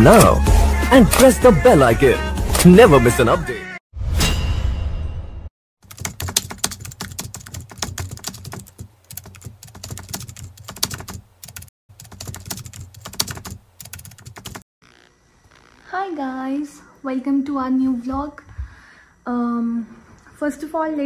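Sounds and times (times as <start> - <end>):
keyboard typing clicks: 5.9 - 14.6.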